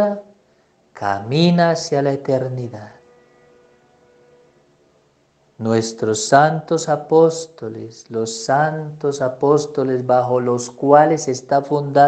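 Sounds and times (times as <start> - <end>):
faint steady held tone: 2.2 - 6.1.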